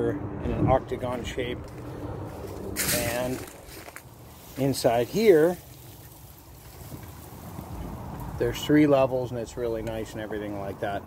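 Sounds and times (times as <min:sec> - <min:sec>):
wind buffeting microphone: 0:00.0 - 0:03.8.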